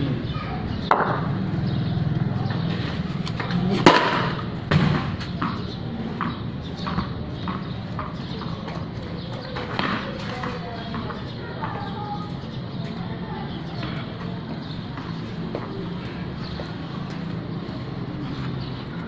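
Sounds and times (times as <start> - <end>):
loud sharp knock: 3.8 - 5.6.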